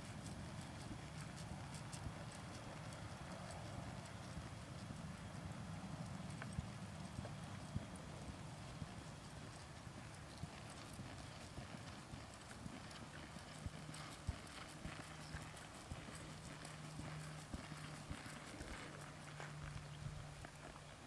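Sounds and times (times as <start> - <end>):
faint hoofbeats on soft dirt: 0.0 - 21.0.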